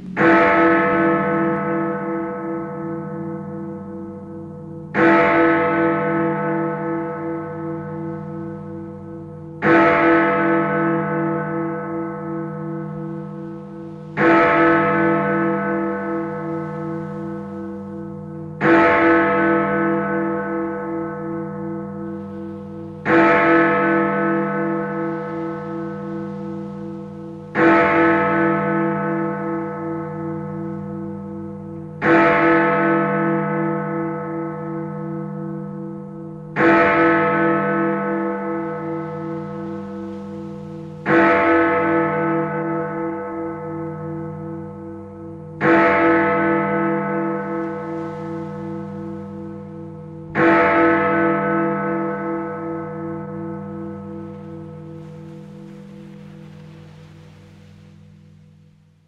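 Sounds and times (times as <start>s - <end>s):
steady wavering hum: 0.0s - 5.0s, 47.0s - 59.0s
large bell tolling: 0.0s - 56.4s.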